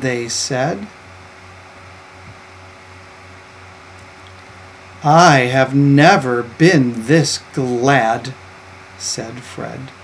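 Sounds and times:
background hiss: 0:00.0 - 0:10.0
low electrical hum: 0:00.0 - 0:10.0.

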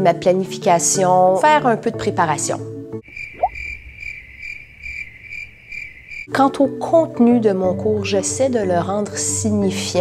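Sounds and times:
crickets chirping: 0:03.0 - 0:06.3.

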